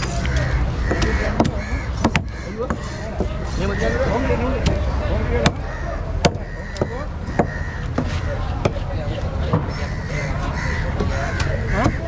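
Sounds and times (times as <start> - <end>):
crows cawing: 0.1 - 4.5, 5.4 - 8.8, 9.4 - 12.0.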